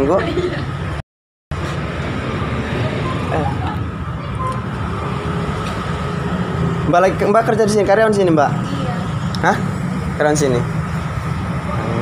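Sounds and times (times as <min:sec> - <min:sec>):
road traffic noise: 0:00.0 - 0:12.0.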